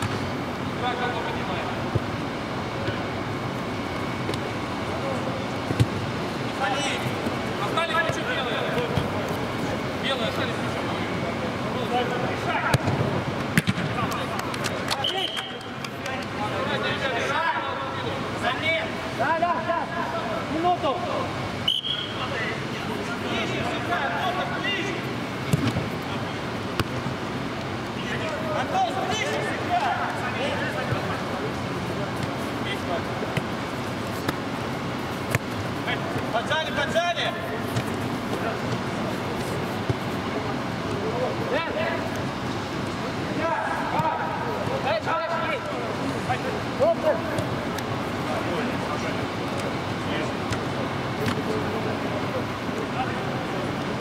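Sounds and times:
ball being kicked: 12.7 - 13.9, 35.2 - 35.6.

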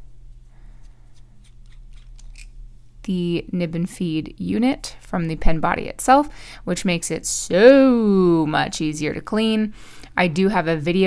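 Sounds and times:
pen unscrewing clicks and scrapes: 1.4 - 2.5.

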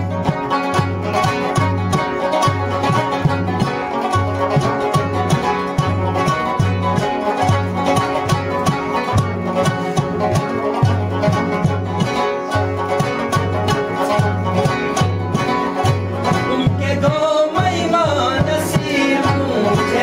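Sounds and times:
frame drum beat: 0.0 - 20.0
plucked lute melody: 0.0 - 20.0.

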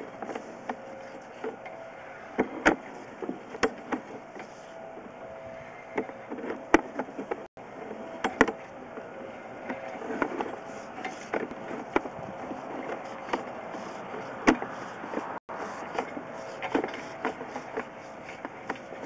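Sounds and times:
sharp clicks and knocks: 8.2 - 12.2.

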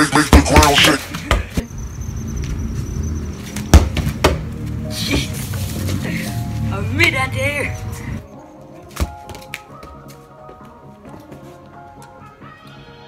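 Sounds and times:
football being kicked: 3.6 - 4.5.

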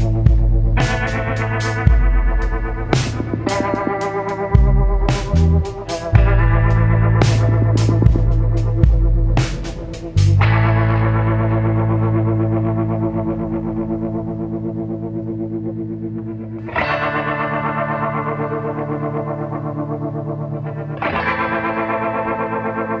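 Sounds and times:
distorted electric guitar chords: 0.0 - 23.0.

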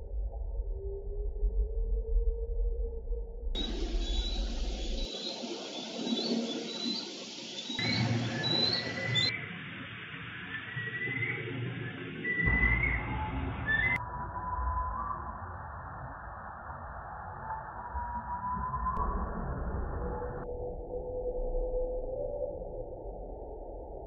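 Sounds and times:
slowed eagle chirping calls: 3.6 - 7.8.

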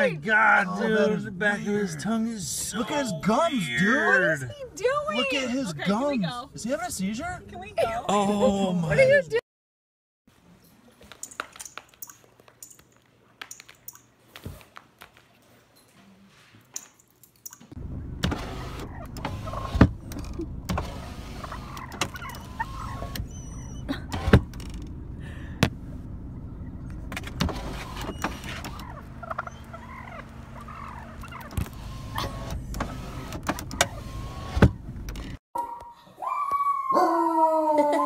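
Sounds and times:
car engine idling: 17.8 - 35.4
wild turkeys clucking and yelping: 18.4 - 24.3, 26.3 - 34.6.

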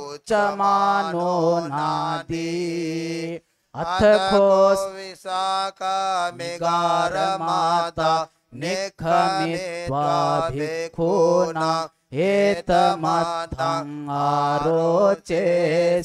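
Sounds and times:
monk chanting: 0.0 - 16.0.

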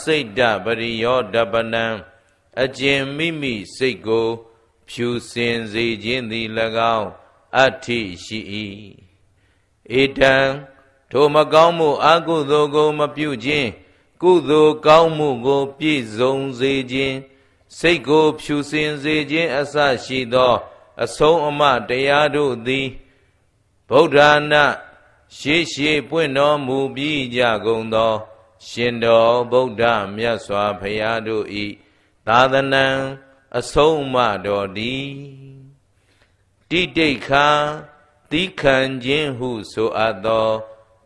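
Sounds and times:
man chanting: 0.0 - 9.2, 9.8 - 23.1, 23.9 - 35.8, 36.7 - 41.0.

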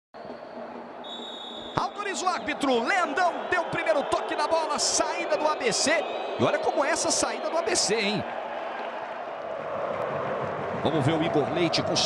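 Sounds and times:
stadium crowd hubbub: 0.3 - 12.0
referee's whistle blast: 1.0 - 2.6.

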